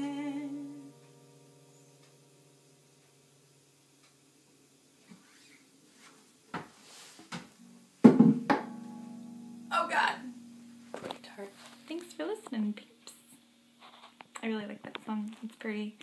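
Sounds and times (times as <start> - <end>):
guitar thump with ringing strings: 7.6 - 12.8
knocks on guitar body: 8.0 - 8.9
person's voice: 9.7 - 10.3, 14.4 - 16.0.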